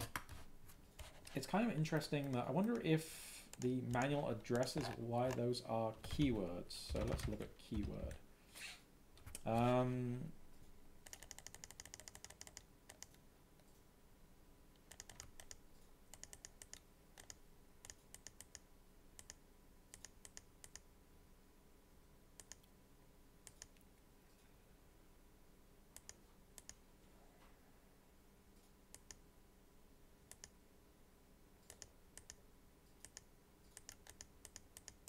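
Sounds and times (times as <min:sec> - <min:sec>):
computer keyboard keystrokes: 0:11.0 - 0:13.2, 0:14.8 - 0:18.6, 0:22.4 - 0:22.7, 0:31.6 - 0:32.4, 0:33.0 - 0:35.0.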